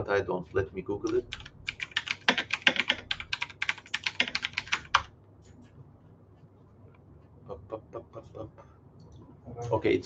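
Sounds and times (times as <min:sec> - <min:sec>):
computer keyboard typing: 0:01.0 - 0:05.1.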